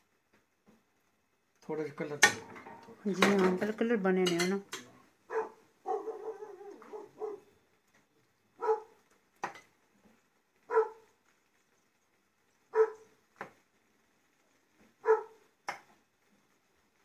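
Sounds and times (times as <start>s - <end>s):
dog whining: 5.3s - 7.5s
small dog barking: 5.3s - 7.5s, 8.6s - 9.0s, 10.7s - 11.2s, 12.7s - 13.2s, 15.0s - 15.5s.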